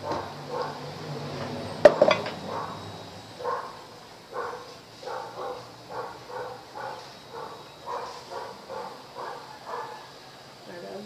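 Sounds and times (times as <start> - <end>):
dog barking: 0.0 - 0.9, 2.4 - 2.8, 3.4 - 10.2.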